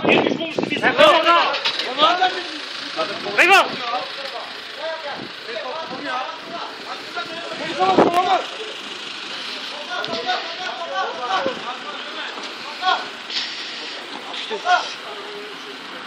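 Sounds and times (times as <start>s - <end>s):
men's voices calling: 0.0s - 16.0s
vehicle engine running: 0.0s - 16.0s.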